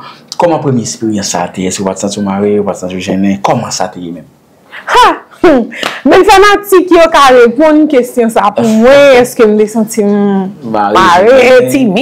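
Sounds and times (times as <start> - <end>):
person speaking: 8.5 - 9.5, 10.1 - 12.0.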